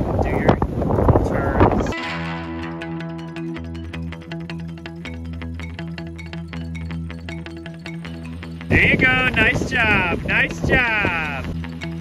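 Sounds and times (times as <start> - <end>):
background music: 1.9 - 12.0.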